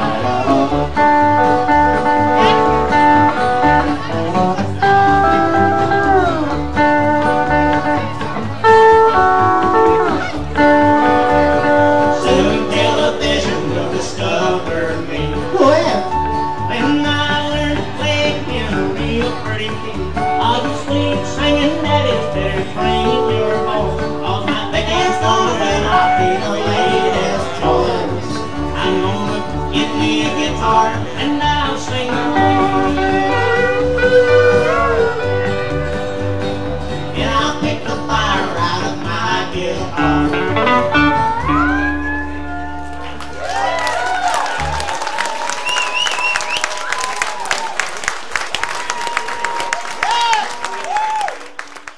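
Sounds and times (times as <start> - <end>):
strummed acoustic guitar: 0.0 - 42.5
lead guitar line: 0.0 - 51.9
upright bass: 0.0 - 51.9.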